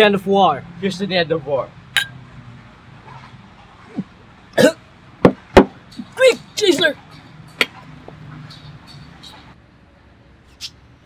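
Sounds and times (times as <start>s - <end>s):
glasses clinking: 2.0s - 2.2s.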